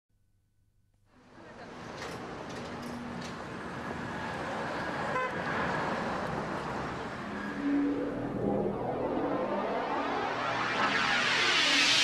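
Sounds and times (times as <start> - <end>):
traffic going by: 1.2 - 10.9
car horn toot: 5.1 - 5.4.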